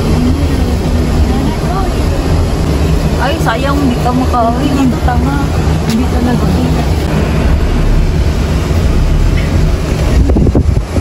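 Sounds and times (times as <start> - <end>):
car engine rumble and road noise: 0.0 - 11.0.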